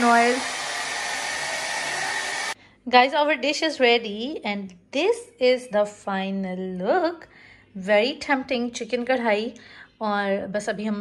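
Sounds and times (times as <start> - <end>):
hair dryer blowing: 0.0 - 2.6.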